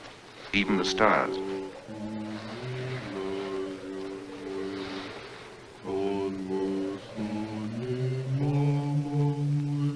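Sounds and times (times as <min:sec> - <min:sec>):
men singing chant in harmony: 0:00.6 - 0:09.9
deep male voice singing: 0:00.8 - 0:04.9, 0:05.8 - 0:09.9.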